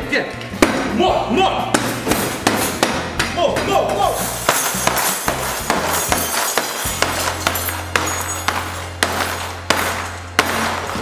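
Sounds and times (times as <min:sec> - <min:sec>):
background music with deep bass: 0:00.0 - 0:11.0.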